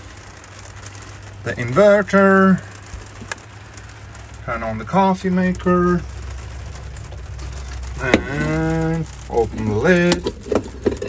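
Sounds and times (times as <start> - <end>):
rain on a vehicle roof: 0.0 - 11.0
steady low hum: 0.0 - 11.0.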